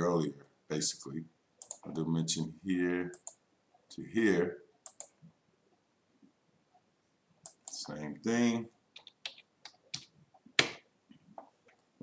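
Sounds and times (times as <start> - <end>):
computer keyboard and mouse clicks: 1.6 - 2.0, 3.1 - 3.4, 4.8 - 5.2, 7.4 - 7.8, 9.0 - 10.8.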